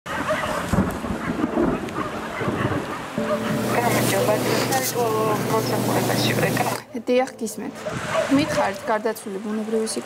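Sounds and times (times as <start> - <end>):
steady rain: 0.5 - 6.9
thunder rumbling: 0.7 - 6.5
person speaking: 3.2 - 7.5.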